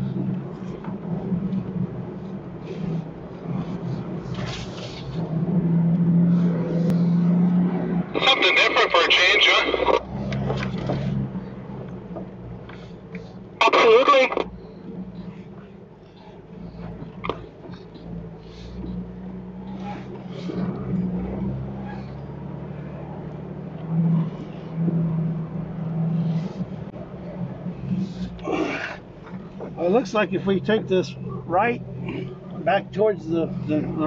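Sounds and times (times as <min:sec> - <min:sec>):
car engine running at low speed: 0:00.0 - 0:34.0.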